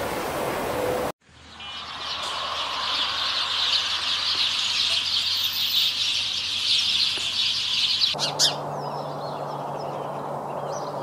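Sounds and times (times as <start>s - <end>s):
flock of sparrows chirping: 1.4s - 11.0s.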